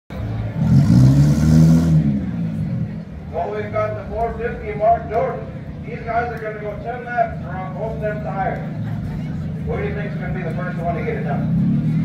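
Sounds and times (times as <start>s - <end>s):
car engine revving: 0.1s - 4.2s, 5.4s - 12.0s.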